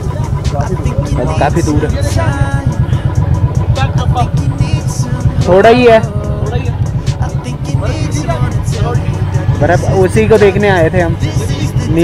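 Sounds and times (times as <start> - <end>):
motorcycle engine rumble: 0.0 - 12.0.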